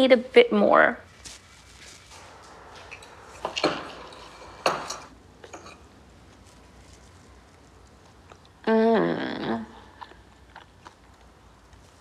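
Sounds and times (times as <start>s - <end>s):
chewing: 6.8s - 8.6s, 9.8s - 12.0s.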